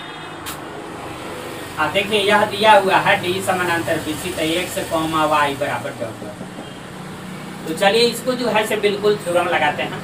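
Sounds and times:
steady background noise: 0.0 - 10.0
sharp click: 0.4 - 0.7
man speaking: 7.6 - 10.0.

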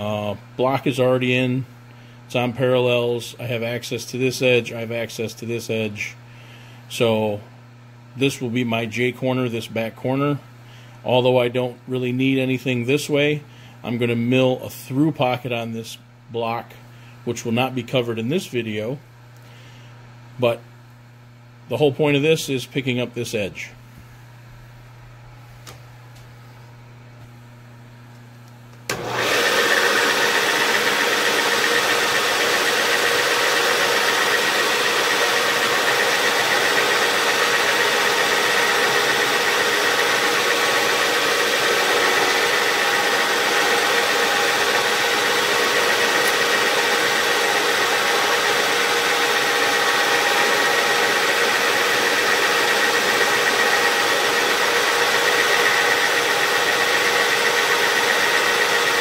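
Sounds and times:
mill spindle humming and whining: 0.0 - 59.0.

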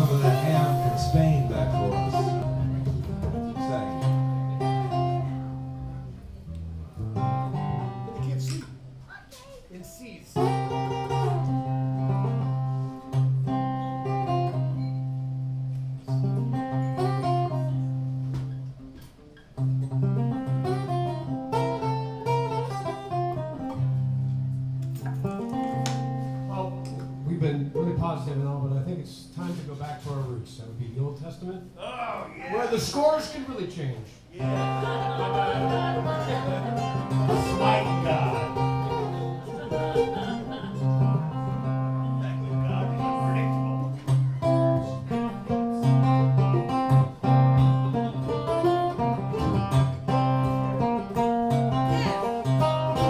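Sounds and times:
guitar strum: 0.0 - 9.0, 10.4 - 27.3, 34.4 - 53.0
acoustic guitar picking: 0.0 - 9.1, 10.4 - 30.2, 34.4 - 53.0.

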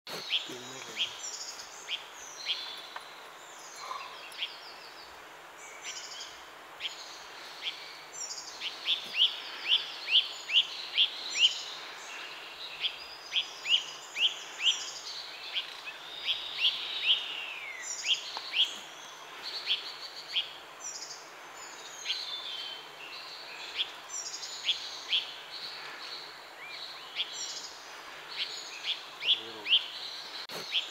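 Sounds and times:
bird twittering song: 0.1 - 30.9.

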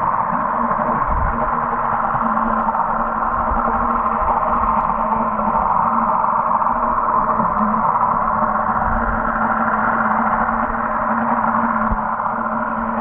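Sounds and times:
constant low hum: 0.0 - 13.0
muffled underwater rushing: 0.0 - 13.0.

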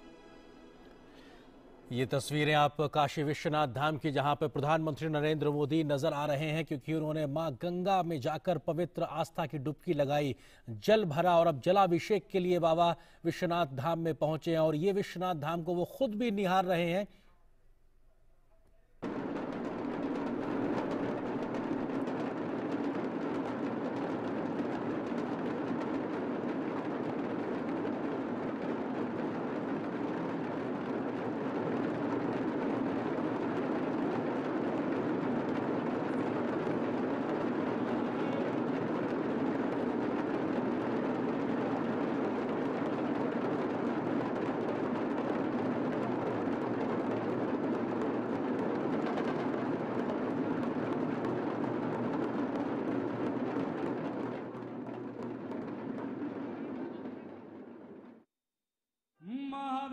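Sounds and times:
drum roll: 0.0 - 16.8, 19.0 - 58.3.

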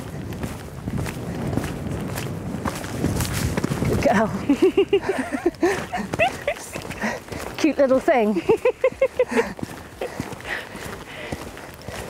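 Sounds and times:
hooves cantering on sand: 0.0 - 12.0.

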